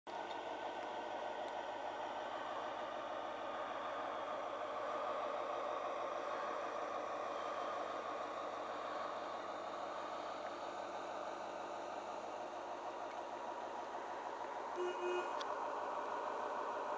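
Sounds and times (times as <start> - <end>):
small boat motor running: 0.1 - 16.9.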